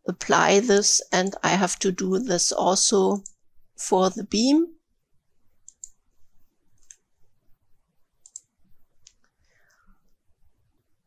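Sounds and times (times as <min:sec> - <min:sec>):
computer mouse clicks: 0:03.2 - 0:03.4, 0:05.6 - 0:06.1, 0:06.7 - 0:07.1, 0:08.2 - 0:09.3.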